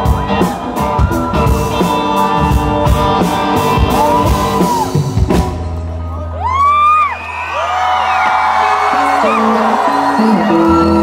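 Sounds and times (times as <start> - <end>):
high whoops: 6.3 - 11.0.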